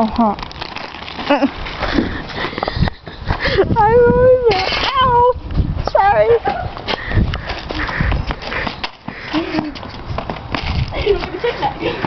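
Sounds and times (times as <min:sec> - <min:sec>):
rustling and scuffling: 0:00.0 - 0:12.0.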